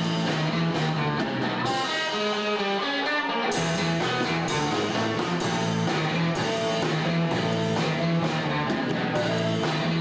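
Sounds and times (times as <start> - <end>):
drums and cymbals: 0.0 - 2.8, 3.4 - 10.0
electric guitar chords: 0.0 - 10.0.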